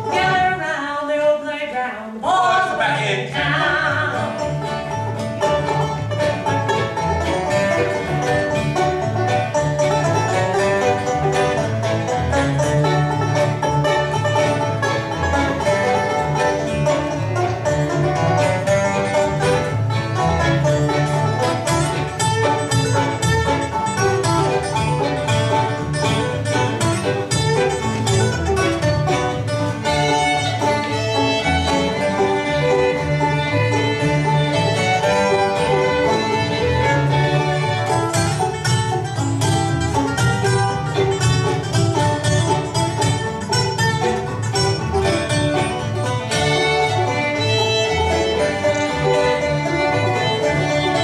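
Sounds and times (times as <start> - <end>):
upright bass: 0.0 - 1.0, 2.1 - 51.0
acoustic guitar: 0.0 - 51.0
banjo: 0.0 - 51.0
fiddle: 0.0 - 51.0.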